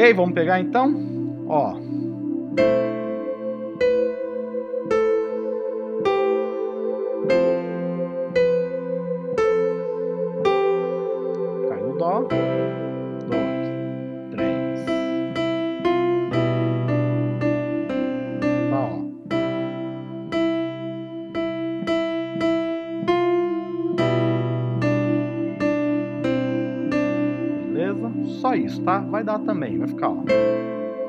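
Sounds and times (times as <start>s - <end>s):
electronic keyboard piano chords: 0.0s - 31.0s
single-note keyboard melody: 0.0s - 31.0s.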